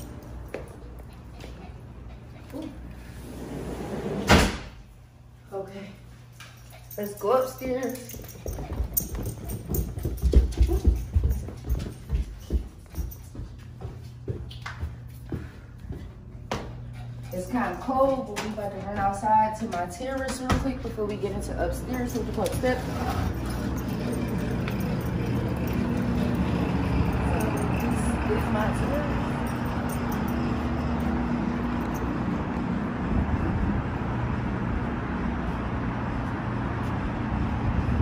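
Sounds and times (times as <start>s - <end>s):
city traffic rumble: 0.0s - 38.0s
bare feet climbing carpeted stairs: 7.0s - 30.4s.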